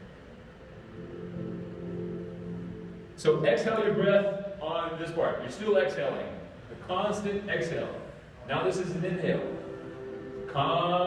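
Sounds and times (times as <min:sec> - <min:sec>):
low held tone: 0:00.0 - 0:05.0, 0:07.5 - 0:11.0
soft ambient music: 0:00.0 - 0:11.0.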